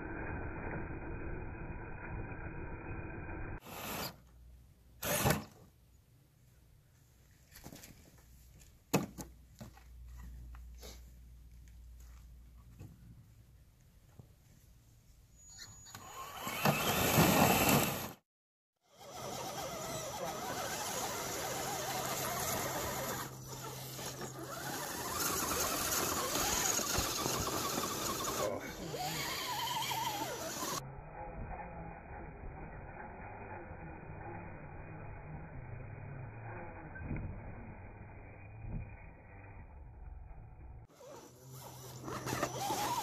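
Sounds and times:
small electric motors whirring: 5.0s - 5.5s, 15.8s - 18.1s, 18.9s - 40.0s, 40.9s - 43.0s.

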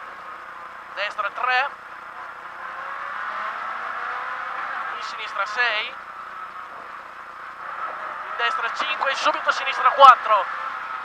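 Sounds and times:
car engine pulling: 0.0s - 11.0s
road noise: 0.0s - 11.0s.

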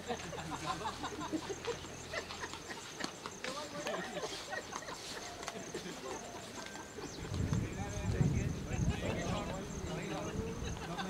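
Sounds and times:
distant voices calling and chatting: 0.0s - 11.0s.

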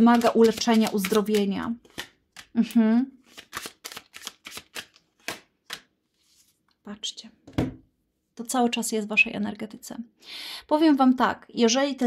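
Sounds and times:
cards being shuffled: 0.0s - 6.7s.

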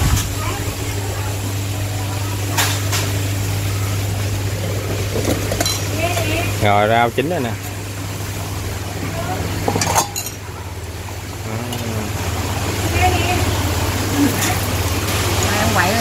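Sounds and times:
broth boiling in pot: 0.0s - 16.0s
utensil clinking on dishes: 5.5s - 5.9s, 9.7s - 10.4s.

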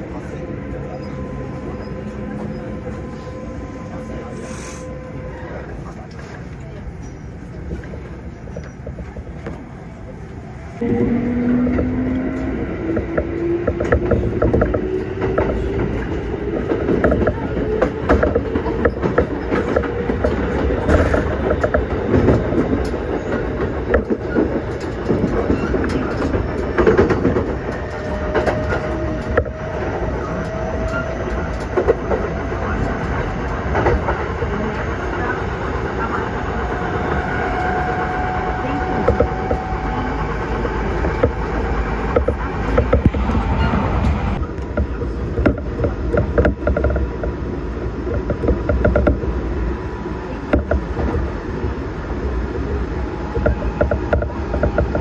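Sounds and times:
train low rumble: 0.0s - 55.0s
wheels clicking over rail joints: 11.6s - 34.6s, 44.4s - 49.4s, 53.2s - 55.0s.

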